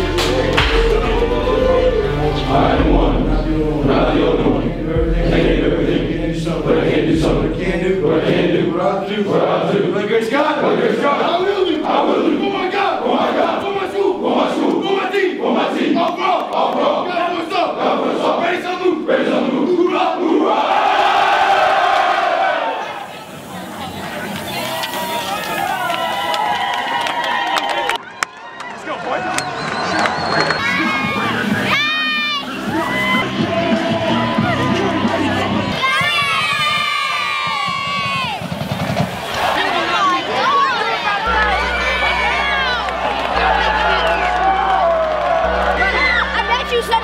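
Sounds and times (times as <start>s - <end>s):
group of people shouting: 30.6s - 38.4s.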